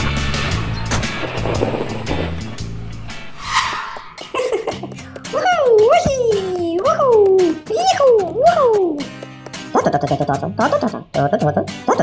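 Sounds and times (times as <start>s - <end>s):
background music: 0.0s - 12.0s
wavering sliding pitched sound: 3.2s - 4.7s
cartoon rushing noise: 3.3s - 4.9s.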